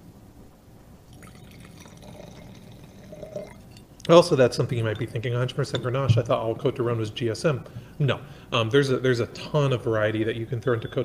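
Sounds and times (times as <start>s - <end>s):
wine pouring into a glass: 1.1s - 5.2s.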